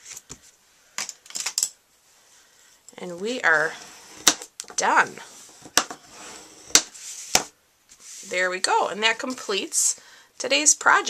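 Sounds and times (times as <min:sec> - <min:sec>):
card sliding on wooden table: 0:05.3 - 0:08.3.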